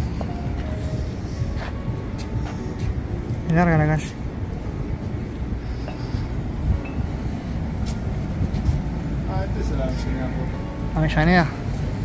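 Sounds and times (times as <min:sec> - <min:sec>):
distant traffic rumble: 0:00.0 - 0:12.0
footsteps on paving: 0:00.1 - 0:03.0.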